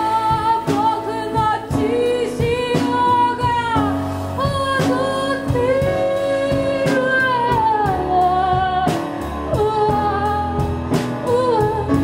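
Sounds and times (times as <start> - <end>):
band accompaniment: 0.0 - 12.0
woman singing into microphone: 0.0 - 12.0.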